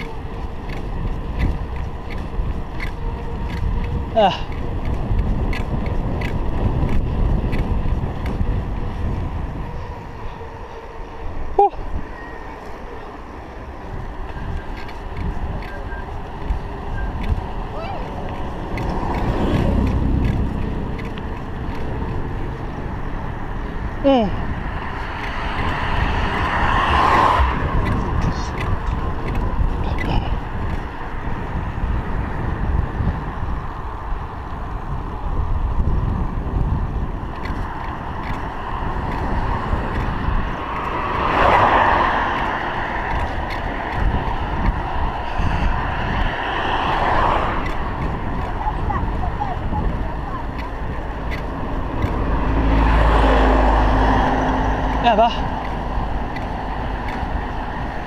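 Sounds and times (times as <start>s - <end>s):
bicycle road noise: 0.0s - 58.0s
cars passing: 0.0s - 58.0s
wind rumble: 0.0s - 58.0s.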